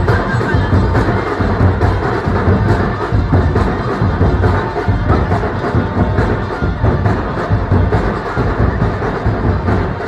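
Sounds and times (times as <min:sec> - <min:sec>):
saxophones and horns: 0:00.0 - 0:10.0
snare and bass drums beat: 0:00.0 - 0:10.0
street band playing: 0:00.0 - 0:10.0.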